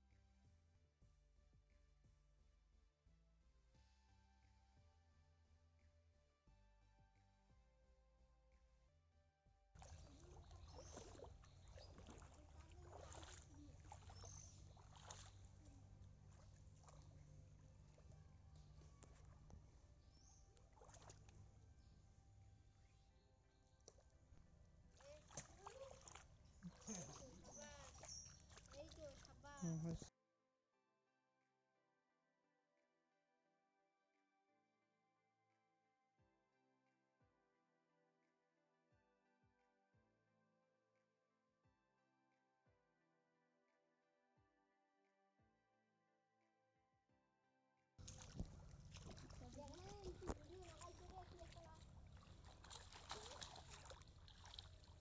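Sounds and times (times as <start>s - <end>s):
small water splashes: 9.8s - 19.2s, 20.2s - 21.6s, 24.9s - 30.1s, 48.0s - 55.0s
pond water sloshing: 9.8s - 22.9s, 23.6s - 30.1s, 48.0s - 55.0s.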